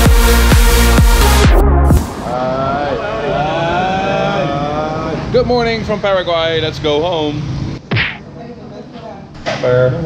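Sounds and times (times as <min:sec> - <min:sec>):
street traffic rumble: 0:02.6 - 0:08.4.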